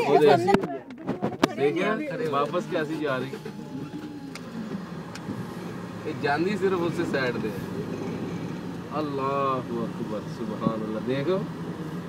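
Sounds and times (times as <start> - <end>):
car cabin rumble: 0.4 - 11.1.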